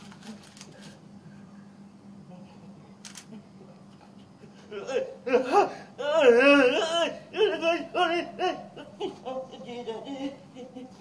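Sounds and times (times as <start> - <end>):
woman wailing and sobbing: 4.7 - 11.0.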